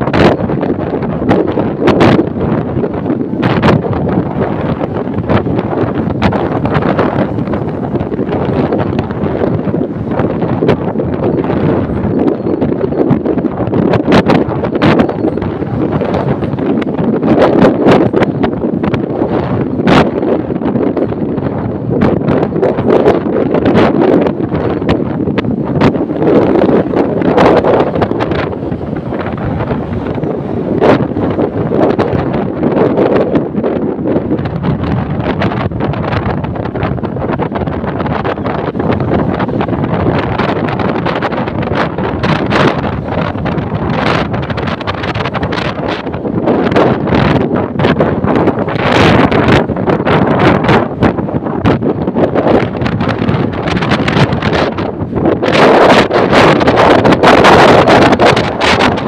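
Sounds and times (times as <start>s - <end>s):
microphone crackling: 0.0s - 59.0s
road and vehicle noise: 0.0s - 59.0s
wind buffeting microphone: 0.0s - 59.0s.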